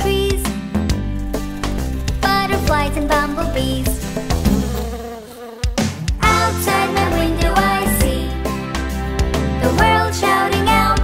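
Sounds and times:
cartoon bee buzzing: 0:01.2 - 0:07.0.

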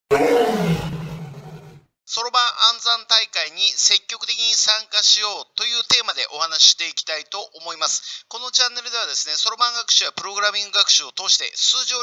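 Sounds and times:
beast roaring: 0:00.1 - 0:01.9.

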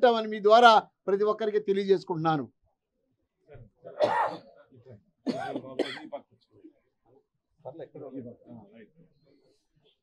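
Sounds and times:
man coughing: 0:04.0 - 0:04.5, 0:05.3 - 0:06.2.

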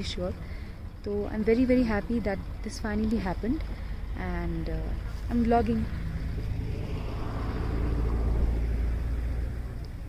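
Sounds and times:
road vehicle passing: 0:00.0 - 0:10.0.

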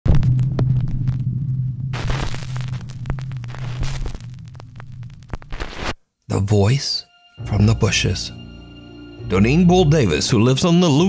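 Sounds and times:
crackling clicking static: 0:00.1 - 0:06.0.

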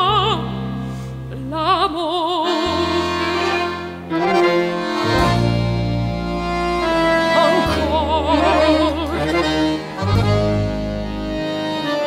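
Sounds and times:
accordion playing chords: 0:02.1 - 0:12.0
woman singing operatic phrase: 0:07.4 - 0:09.6.

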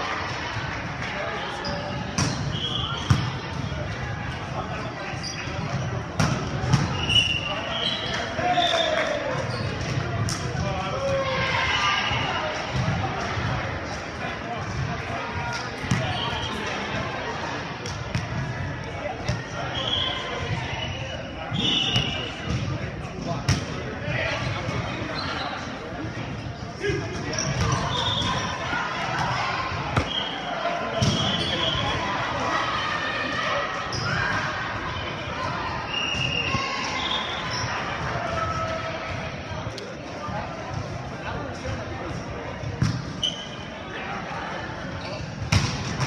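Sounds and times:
sneaker squeaks: 0:01.5 - 0:03.7, 0:05.1 - 0:10.0, 0:15.8 - 0:16.8, 0:19.3 - 0:22.6, 0:24.4 - 0:25.7, 0:27.1 - 0:28.8, 0:29.9 - 0:32.0, 0:33.8 - 0:34.4, 0:35.9 - 0:37.9, 0:42.8 - 0:43.8, 0:44.9 - 0:45.7
players calling out: 0:23.6 - 0:41.4.

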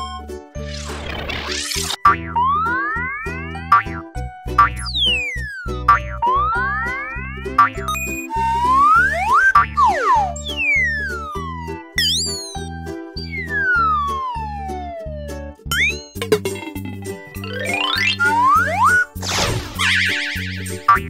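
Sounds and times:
upbeat children's music: 0:01.8 - 0:21.0
springy boing glides: 0:02.0 - 0:10.3
cartoon whoosh: 0:17.9 - 0:20.8.

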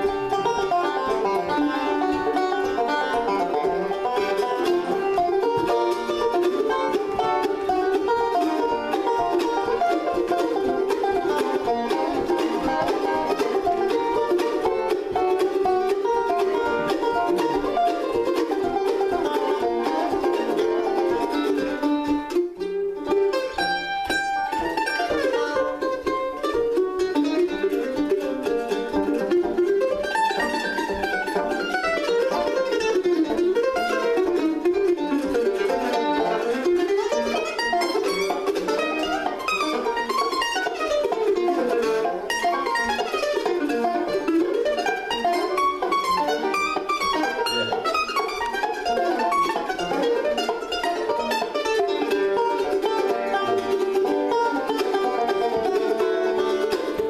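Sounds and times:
banjo rolls: 0:00.0 - 0:57.0
mandolin picked melody: 0:00.0 - 0:57.0.

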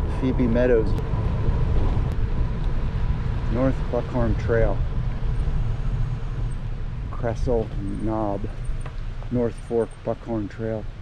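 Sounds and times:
bicycle tyre noise: 0:00.0 - 0:09.3
wind buffeting microphone: 0:00.0 - 0:10.2.

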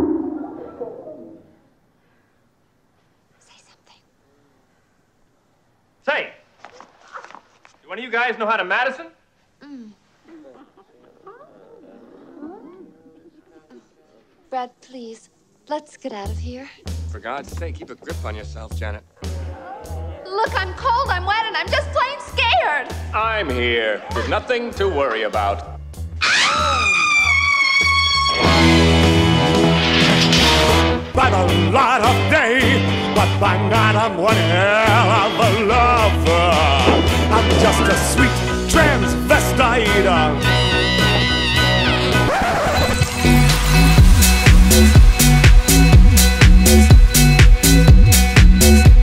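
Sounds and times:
faint whisper: 0:03.3 - 0:04.7, 0:09.6 - 0:14.5
woman screaming high-pitched: 0:26.2 - 0:28.4
pulsing bass line music: 0:30.6 - 0:49.0.

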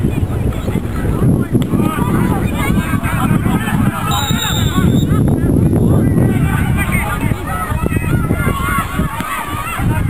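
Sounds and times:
wind buffeting microphone: 0:00.0 - 0:10.0
people shouting: 0:01.7 - 0:05.2, 0:06.3 - 0:10.0.

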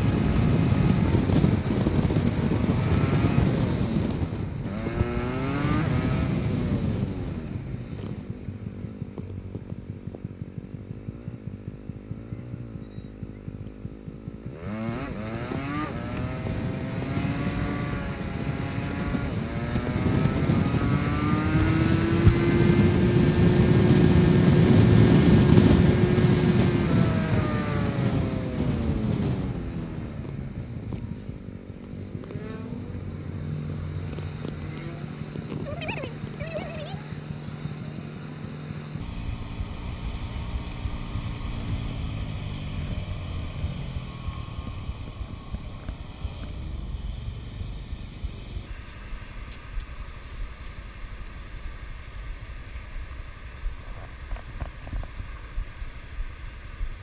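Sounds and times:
motorcycle engine: 0:00.0 - 0:57.0.

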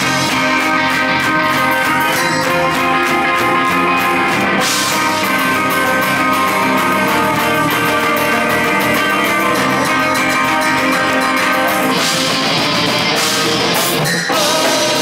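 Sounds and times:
distorted electric guitars: 0:00.0 - 0:15.0
drum kit: 0:00.0 - 0:15.0.

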